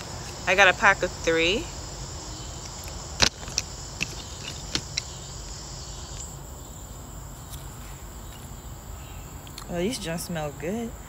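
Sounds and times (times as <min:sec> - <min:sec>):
high-pitched insect chorus: 0:00.0 - 0:11.0
sharp clicks: 0:02.6 - 0:06.3.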